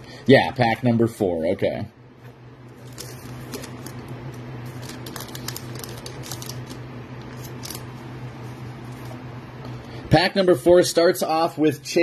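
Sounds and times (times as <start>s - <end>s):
steady low hum: 0.0s - 12.0s
foil wrapper tearing and crinkling: 2.8s - 7.9s.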